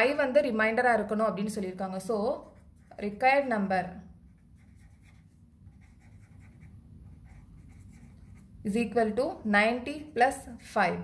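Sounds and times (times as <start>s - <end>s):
low steady hum: 0.0s - 11.0s
pen scratching on paper: 4.3s - 8.5s.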